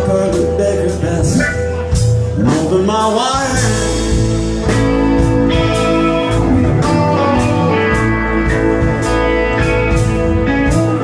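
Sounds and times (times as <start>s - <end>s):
electric guitars: 0.0s - 11.0s
live rock band playing: 0.0s - 11.0s
regular drum beat: 0.0s - 11.0s.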